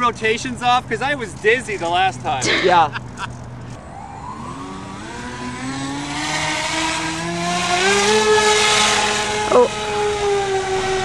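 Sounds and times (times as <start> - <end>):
electric motors whining: 3.7 - 11.0.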